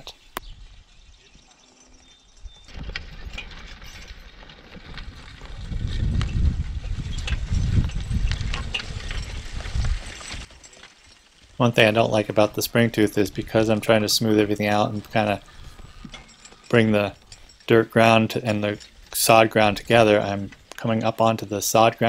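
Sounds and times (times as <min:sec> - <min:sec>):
harrow dragging and rattling: 0:00.7 - 0:22.0.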